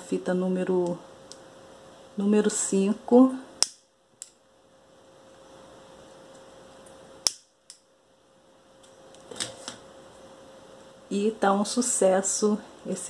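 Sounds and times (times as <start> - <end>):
lighter clicking: 3.6 - 4.4, 7.2 - 7.8.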